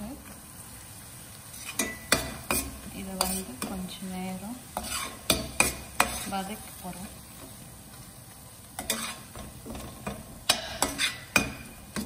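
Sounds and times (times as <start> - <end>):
oil sizzling: 0.0 - 12.0
spatula stirring in frying pan: 1.2 - 12.0
spatula knocking against pan: 9.4 - 12.0.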